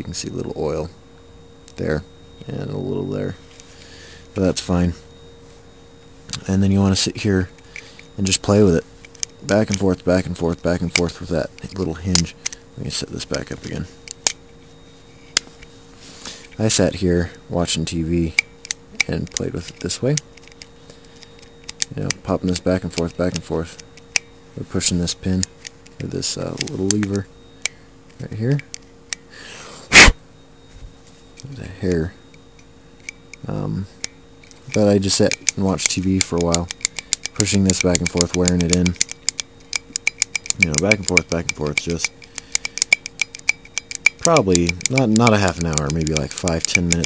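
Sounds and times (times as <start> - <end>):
trigger mechanism clicks: 18.3 - 24.3, 25.4 - 27.8, 32.3 - 47.0.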